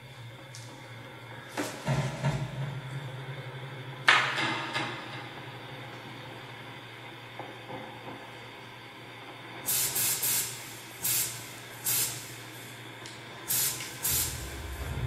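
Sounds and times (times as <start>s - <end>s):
loud hissing noise burst: 9.7s - 12.8s, 13.5s - 15.0s
steady low hum: 10.7s - 15.0s.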